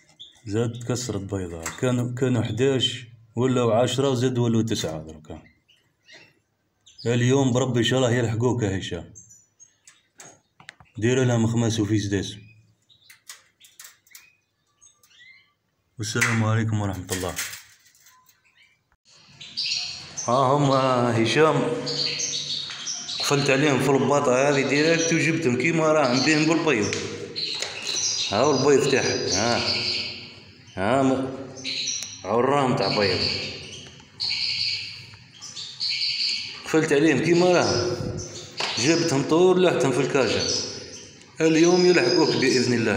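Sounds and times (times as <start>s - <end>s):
canaries chirping faintly: 0.0s - 42.9s
songbird trilling: 12.4s - 15.6s, 18.0s - 42.9s.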